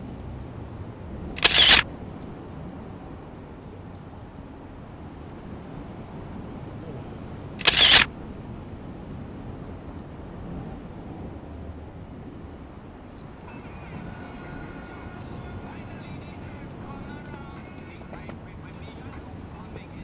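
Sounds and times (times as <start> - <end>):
outdoor background noise: 0.0 - 20.0.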